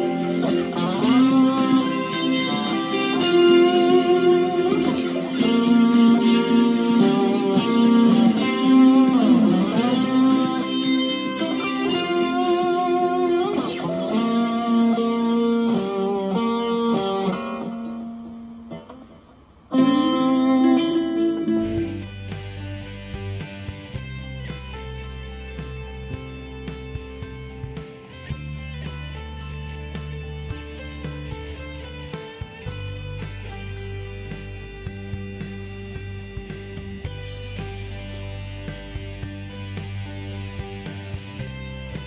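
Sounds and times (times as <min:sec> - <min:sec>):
ticking beat: 0:00.0 - 0:16.6
electric guitar lead melody: 0:00.0 - 0:42.0.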